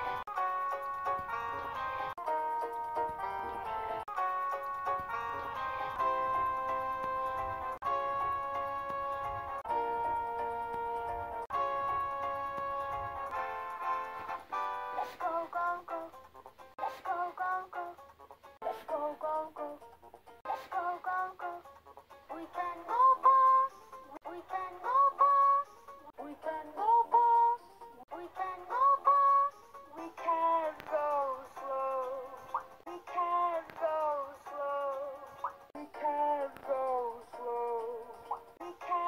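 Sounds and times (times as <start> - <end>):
music: 0.0 - 39.0
person singing children's song: 13.6 - 39.0.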